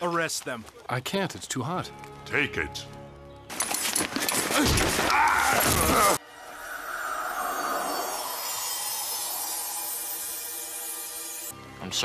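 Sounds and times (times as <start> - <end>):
soft background music: 0.9 - 4.0, 6.2 - 12.0.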